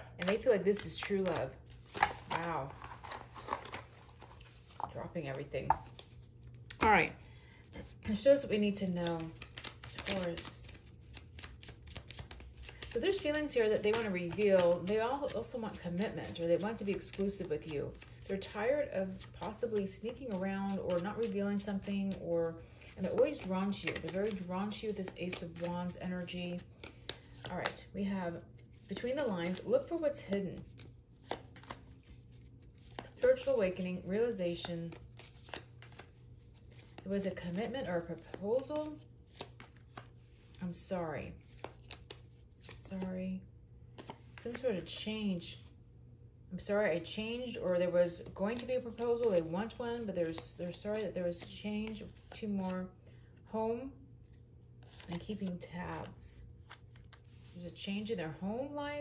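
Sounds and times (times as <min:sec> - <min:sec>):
cards rustling: 0:00.0 - 0:06.9, 0:07.8 - 0:43.1, 0:43.9 - 0:45.0, 0:48.1 - 0:52.7, 0:54.8 - 0:58.2.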